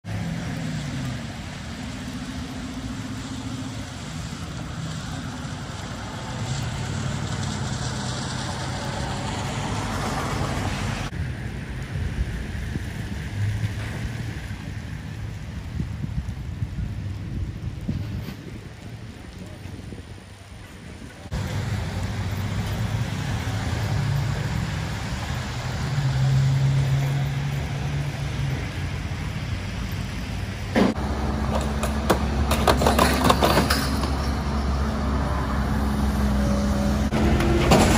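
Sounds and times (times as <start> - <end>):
engine running: 21.2 - 37.9.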